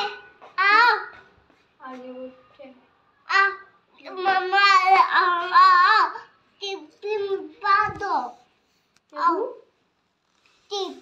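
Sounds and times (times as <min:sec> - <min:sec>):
child singing high: 0:00.0 - 0:01.2.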